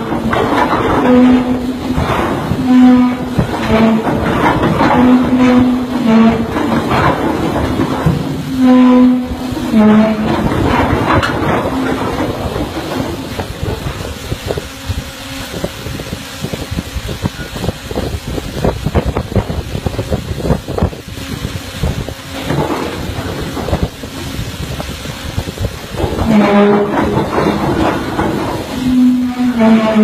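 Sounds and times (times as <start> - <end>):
anchor chain rumbling over windlass: 0.0 - 30.0
wind buffeting microphone: 0.0 - 30.0.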